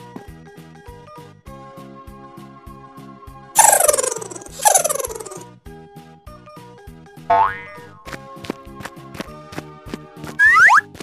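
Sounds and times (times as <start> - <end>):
bouncy children's music: 0.0 - 5.4, 6.5 - 11.0
warbling cartoon sound effect: 3.6 - 5.4.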